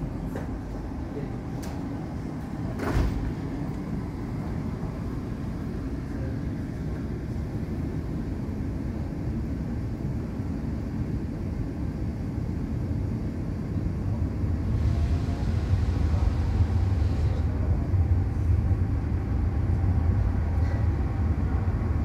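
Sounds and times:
airport terminal rumble: 0:00.0 - 0:22.0.

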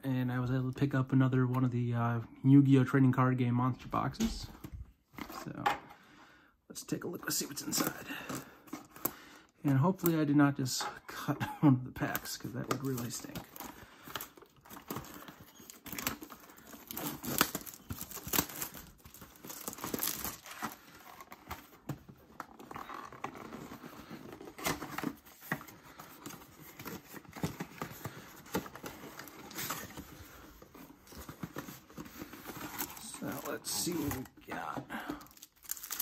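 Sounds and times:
plastic wrapping crinkling and tearing: 0:12.0 - 0:36.0.

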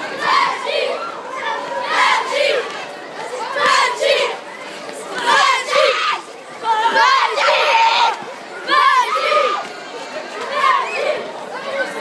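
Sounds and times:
children chanting and shouting: 0:00.0 - 0:12.0.

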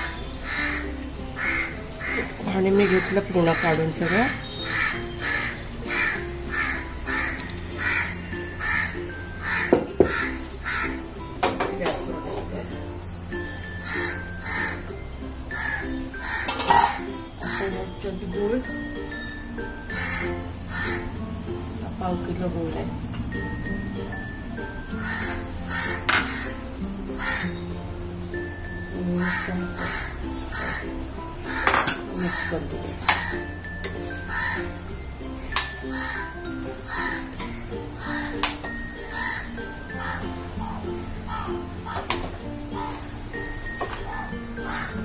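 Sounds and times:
crows cawing: 0:00.0 - 0:11.2, 0:13.7 - 0:18.0, 0:19.8 - 0:21.2, 0:24.9 - 0:27.6, 0:29.2 - 0:35.0, 0:35.6 - 0:43.2, 0:44.1 - 0:45.0
light background music: 0:00.0 - 0:45.0
pot clanking on metal stove: 0:16.4 - 0:17.2, 0:31.6 - 0:32.3.

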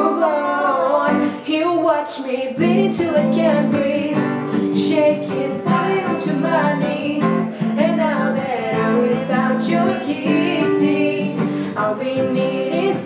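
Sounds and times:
acoustic guitar strumming: 0:00.0 - 0:13.0
women singing a pop ballad: 0:00.0 - 0:13.0.

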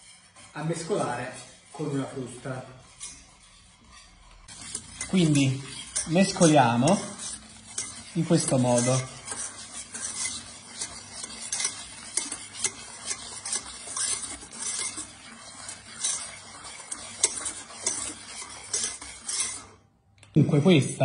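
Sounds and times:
whisk scraping metal pan: 0:00.0 - 0:21.0.

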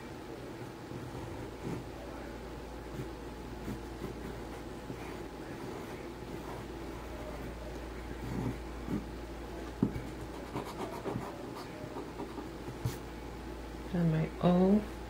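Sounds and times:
steady low hum: 0:00.0 - 0:15.0
pencil scratching on paper: 0:09.8 - 0:13.0.

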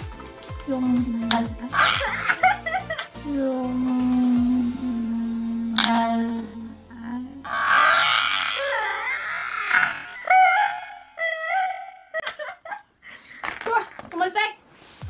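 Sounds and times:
women laughing: 0:01.7 - 0:03.1, 0:10.2 - 0:13.2.

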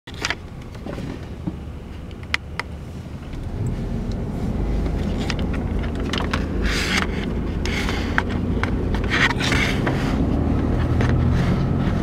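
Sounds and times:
engine and tyre rumble: 0:00.1 - 0:12.0.

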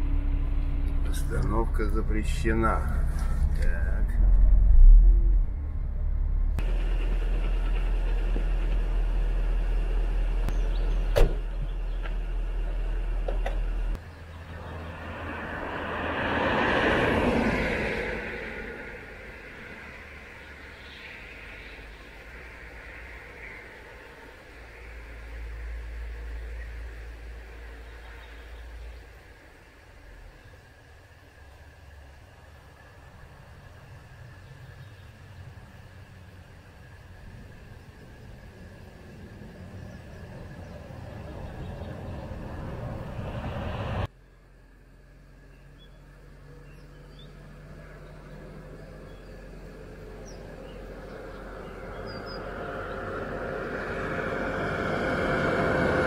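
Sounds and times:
vehicle passing by: 0:00.0 - 0:44.1, 0:45.6 - 0:56.0
car engine and road rumble: 0:00.0 - 0:56.0
traffic noise: 0:00.0 - 0:56.0.

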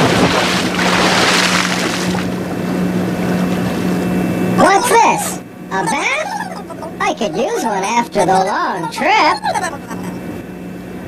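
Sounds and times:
rushing surf-like water: 0:00.0 - 0:02.4
steady low hum: 0:00.0 - 0:11.0.

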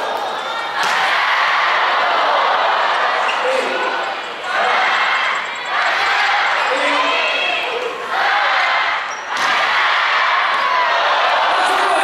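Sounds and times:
loud crowd din: 0:00.0 - 0:12.0.

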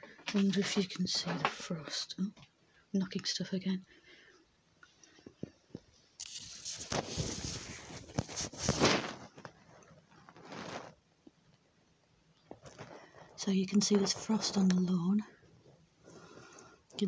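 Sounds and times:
net curtain rustling over phone: 0:06.2 - 0:11.0.

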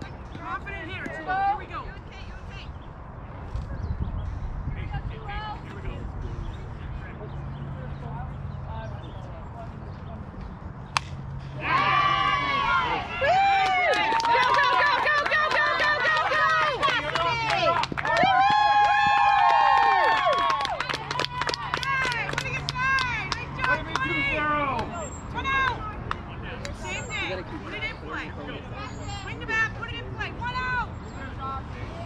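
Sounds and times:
bat cracking on ball: 0:11.0 - 0:11.2.

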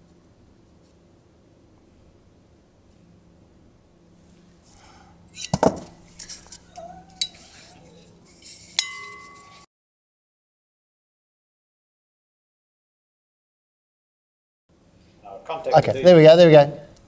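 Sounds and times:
metal clinking on glass: 0:08.7 - 0:09.6
glass ringing: 0:08.8 - 0:09.6.

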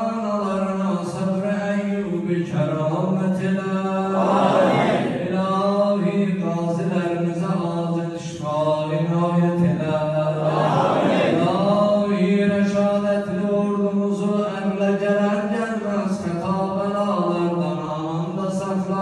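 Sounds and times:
man chanting into a microphone: 0:00.0 - 0:10.5, 0:11.3 - 0:19.0.

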